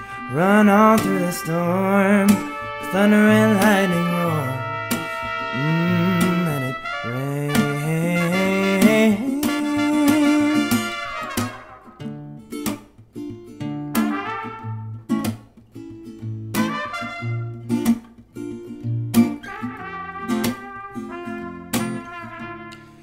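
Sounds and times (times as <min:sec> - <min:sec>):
trumpet melody: 0:00.0 - 0:12.4, 0:13.9 - 0:15.3, 0:16.5 - 0:18.0, 0:19.2 - 0:23.0
strummed acoustic guitar: 0:00.0 - 0:23.0.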